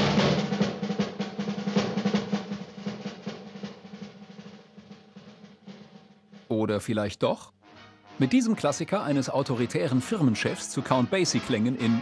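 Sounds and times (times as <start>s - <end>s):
fast drum roll: 0.0s - 6.9s
orchestral film music: 6.6s - 12.0s.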